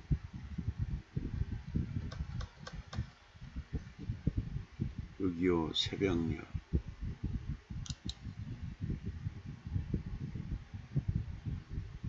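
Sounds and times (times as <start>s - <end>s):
computer keyboard typing: 2.1s - 3.1s
sharp key clicks: 7.8s - 8.2s.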